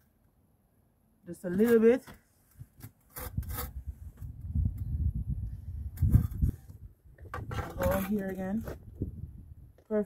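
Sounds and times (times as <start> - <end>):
concrete step scraping: 6.0 - 8.9.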